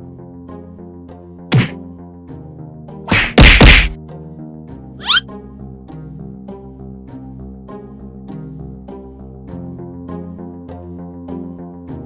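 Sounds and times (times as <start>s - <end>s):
background music: 0.0s - 12.0s
whacking punch sound effects: 1.5s - 1.8s, 3.1s - 4.0s.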